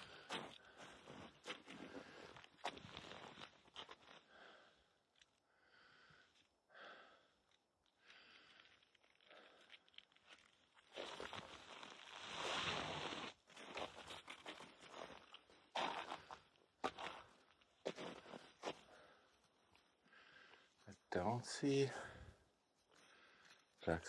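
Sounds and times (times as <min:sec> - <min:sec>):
footsteps crunching in snow: 0:00.0 - 0:04.2, 0:10.7 - 0:18.8.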